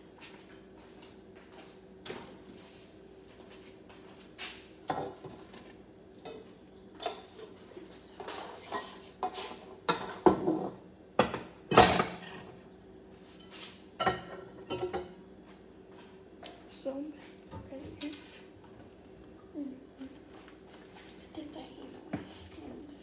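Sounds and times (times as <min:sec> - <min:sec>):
faint steady hum: 0:00.0 - 0:23.0
dishes and utensils clattering: 0:08.2 - 0:12.7, 0:13.3 - 0:15.1.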